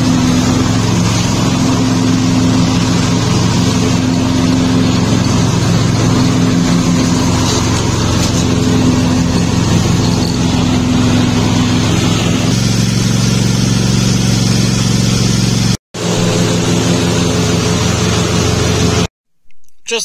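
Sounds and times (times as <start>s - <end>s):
lawn mower engine running: 0.0s - 19.1s.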